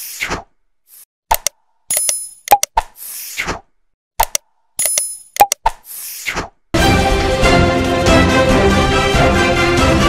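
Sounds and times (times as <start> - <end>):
mouse clicks: 1.3 - 3.0, 4.2 - 6.4
theme music: 6.8 - 10.0.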